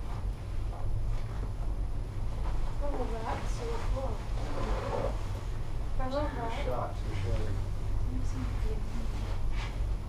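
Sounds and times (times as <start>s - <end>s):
gondola cabin rumble: 2.8s - 10.0s.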